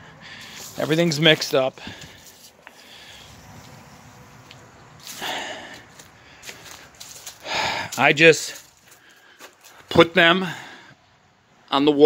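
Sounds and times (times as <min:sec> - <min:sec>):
man breathing: 0:00.0 - 0:00.8, 0:01.8 - 0:03.7, 0:05.0 - 0:11.2.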